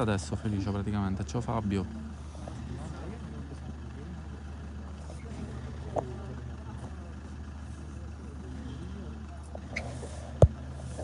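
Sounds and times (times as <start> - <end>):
car engine idling: 0.0 - 11.0
faint murmuring voices: 0.0 - 11.0.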